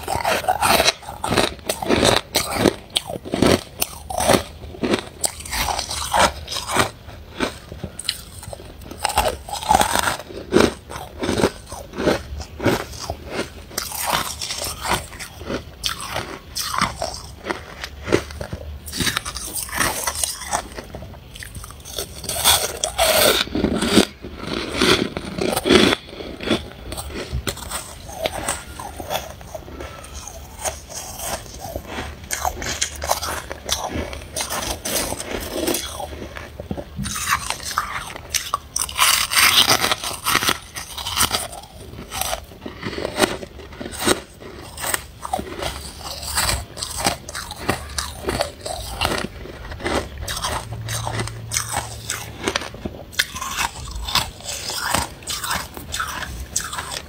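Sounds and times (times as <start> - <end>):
frost crunching while chewed: 0.0 - 57.0.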